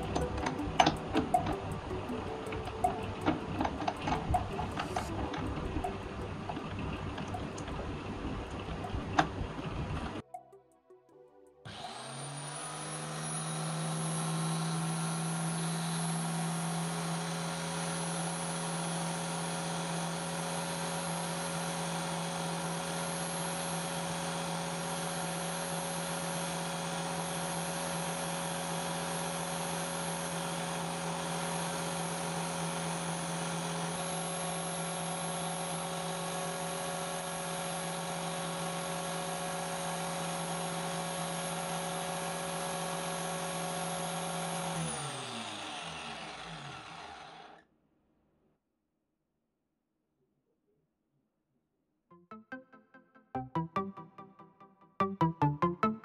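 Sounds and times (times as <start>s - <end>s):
grinder wheel winding down: 0.0s - 10.2s, 11.7s - 47.6s
angle grinder motor whine: 11.7s - 47.6s.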